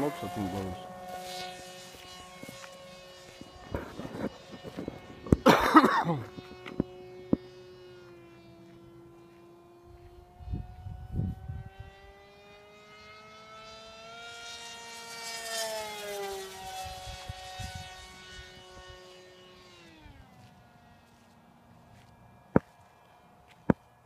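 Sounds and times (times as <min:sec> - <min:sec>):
model plane electric motor whining: 0:00.0 - 0:24.0.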